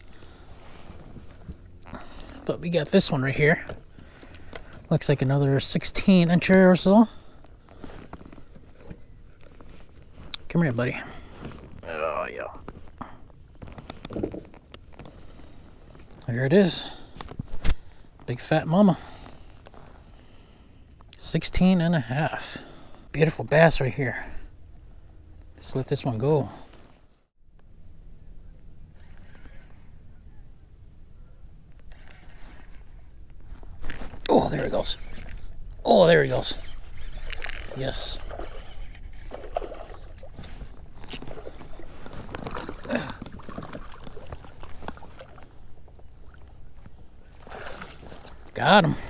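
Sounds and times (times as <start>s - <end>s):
fishing reel scrapes and clicks: 31.9s - 32.9s, 34.7s - 35.4s, 36.3s - 39.6s.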